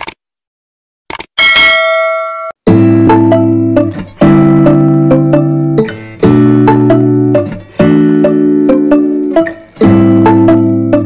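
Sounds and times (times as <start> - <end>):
notification bell ding: 1.4 - 2.6.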